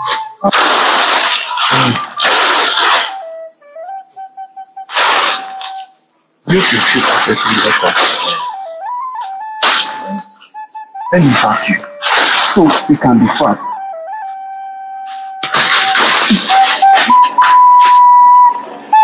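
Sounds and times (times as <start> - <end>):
slow flute-like melody: 0.0 - 19.0
loud short noisy bursts: 0.4 - 3.4, 4.9 - 5.9.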